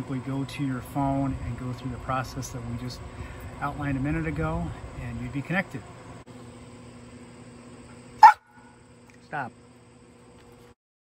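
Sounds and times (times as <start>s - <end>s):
faint steady hum: 0.0s - 10.8s
dog barking: 8.2s - 8.6s.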